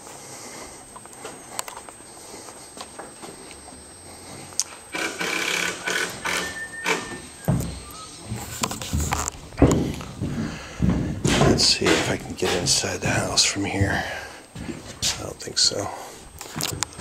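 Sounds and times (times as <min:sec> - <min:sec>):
hollow thumps: 0:06.9 - 0:15.2
footsteps scuffing on plywood: 0:07.5 - 0:15.3.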